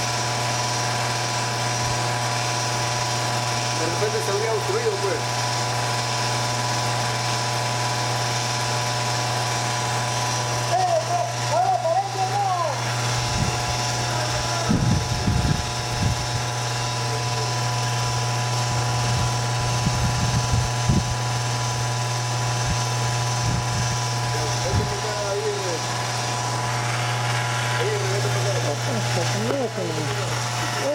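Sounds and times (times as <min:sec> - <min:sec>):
pumps humming: 0:00.0 - 0:30.9.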